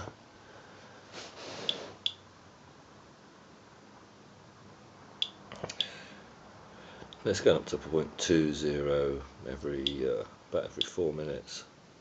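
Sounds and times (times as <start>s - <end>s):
soft breath or sniff: 0.4s - 2.0s
geiger counter clicking: 9.8s - 10.0s.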